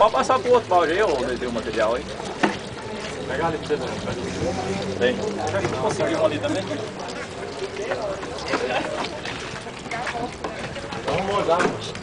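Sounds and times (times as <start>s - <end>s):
outdoor noise: 0.0s - 12.0s.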